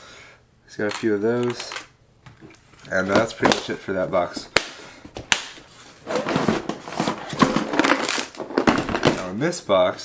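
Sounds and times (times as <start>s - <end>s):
plastic boxes clattering: 0.8s - 9.4s.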